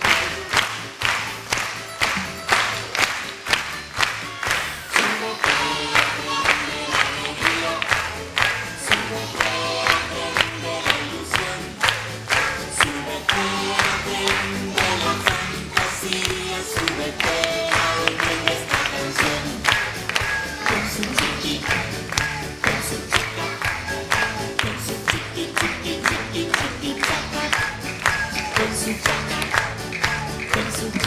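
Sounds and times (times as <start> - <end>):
upbeat song with steady beat: 0.0 - 31.0
young children singing: 4.4 - 31.0.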